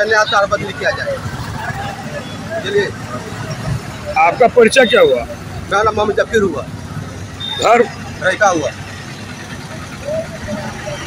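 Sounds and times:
low roadside hum: 0.0 - 11.0.

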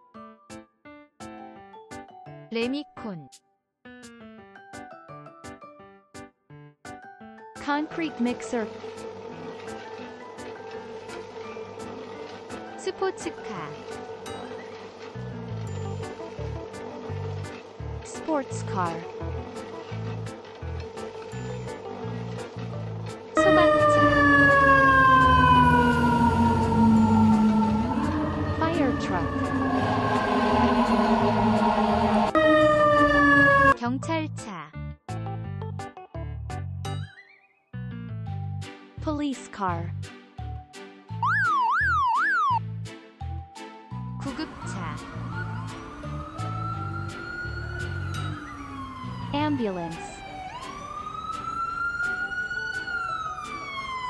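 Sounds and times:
fire engine siren: 23.4 - 33.8, 41.2 - 42.6, 44.3 - 54.0
low rumble: 25.8 - 32.4.

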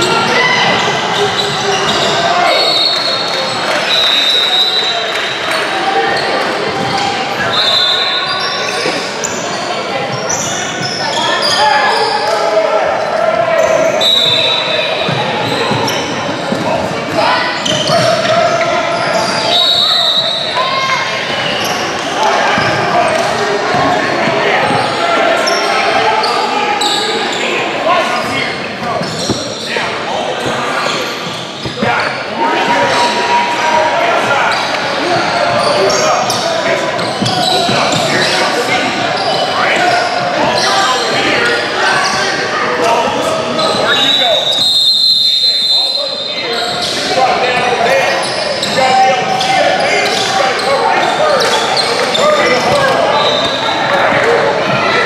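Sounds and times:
indistinct shouts and chatter: 0.0 - 55.0.

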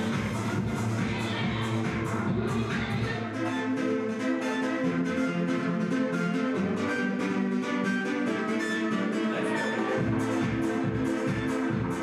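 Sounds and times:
plucked synth chords: 0.0 - 12.0.

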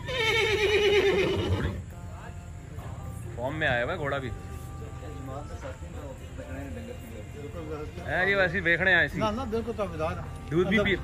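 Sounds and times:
horse whinnying: 0.0 - 1.9.

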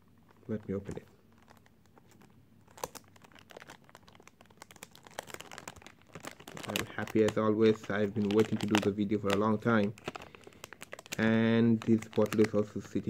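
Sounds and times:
cellophane crinkling: 0.0 - 13.0.

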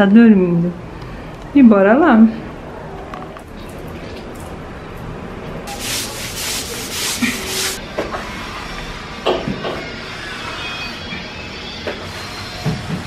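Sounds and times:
broom scrubbing tile floor: 5.7 - 7.8.

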